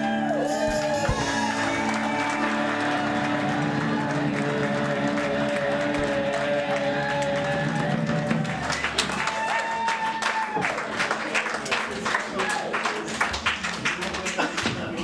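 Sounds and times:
live band music: 0:00.0 - 0:06.8
audience applause: 0:00.4 - 0:15.0.

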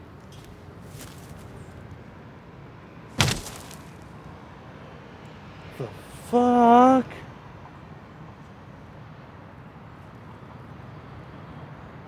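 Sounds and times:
heavy thud: 0:03.2 - 0:04.0.

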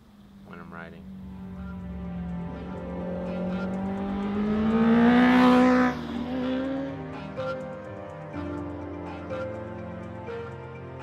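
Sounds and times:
motorcycle engine revving: 0:00.0 - 0:07.6.

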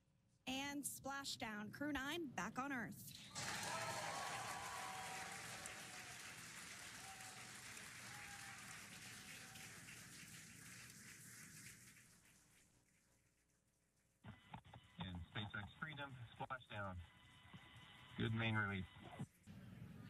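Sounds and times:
applause: 0:03.3 - 0:12.8.

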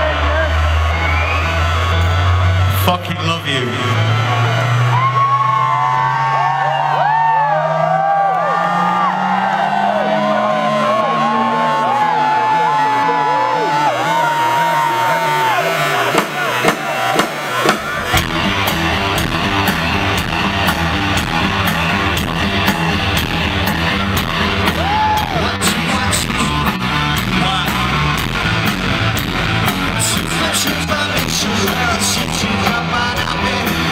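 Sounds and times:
audience whooping and cheering: 0:00.0 - 0:03.0, 0:03.6 - 0:33.9
rock band playing: 0:00.0 - 0:07.0, 0:08.6 - 0:33.9.

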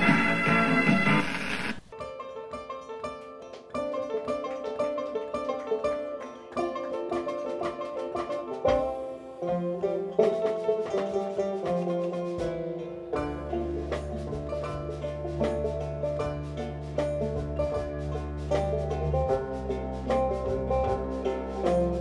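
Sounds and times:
banjo picking fast notes: 0:00.0 - 0:22.0
lower plucked notes: 0:08.6 - 0:22.0.

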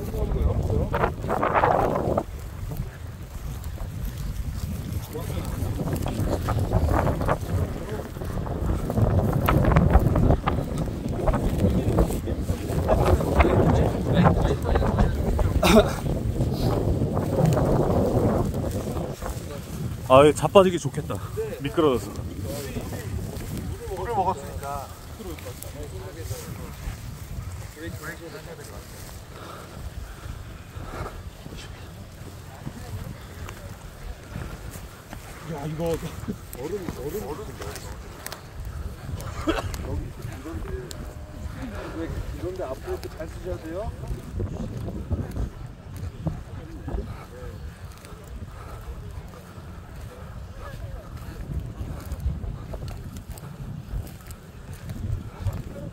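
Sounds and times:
faint voices: 0:00.0 - 0:55.9
footsteps swishing through dry grass: 0:00.0 - 0:55.9
wind buffeting microphone: 0:00.0 - 0:55.9.

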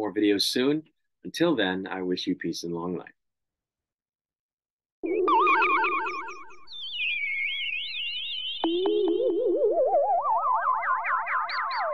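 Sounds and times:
warbling synthesized tones: 0:05.0 - 0:11.9.

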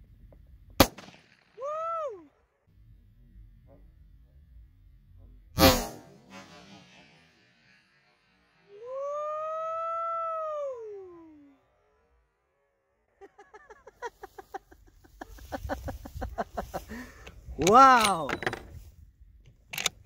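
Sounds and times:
rifle shot: 0:00.8 - 0:01.6, 0:05.6 - 0:07.4
man hollering whoo: 0:01.6 - 0:02.3, 0:08.7 - 0:11.6.

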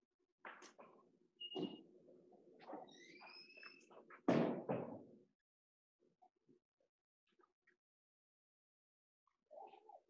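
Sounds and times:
faint high squeak: 0:01.4 - 0:01.8.

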